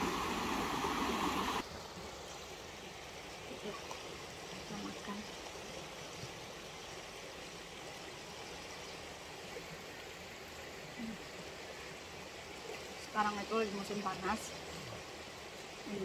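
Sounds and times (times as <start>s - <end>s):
river flowing over rocks: 0.0s - 16.0s.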